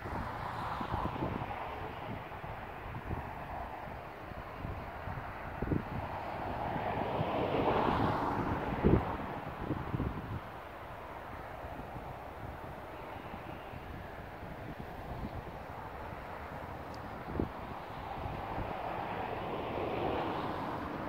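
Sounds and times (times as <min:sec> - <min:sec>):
broad rushing noise: 0:00.0 - 0:21.0
wind buffeting microphone: 0:00.0 - 0:21.0.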